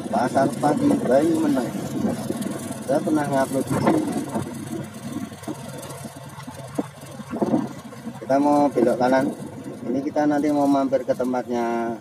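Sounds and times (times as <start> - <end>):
vehicle engine cruising hum: 0.0 - 12.0
wind and road noise: 0.0 - 12.0.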